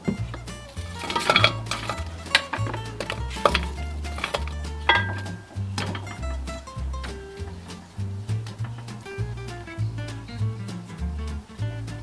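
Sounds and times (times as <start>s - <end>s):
fruit slices knocking against pot: 0.0s - 9.7s
background music: 0.0s - 12.0s.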